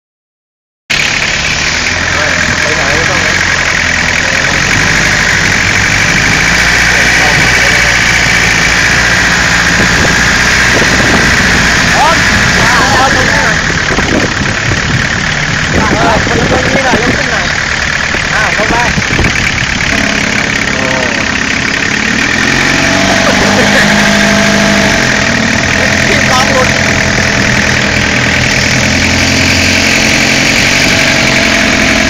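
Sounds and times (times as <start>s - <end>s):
vehicle engine running: 0.9s - 32.0s.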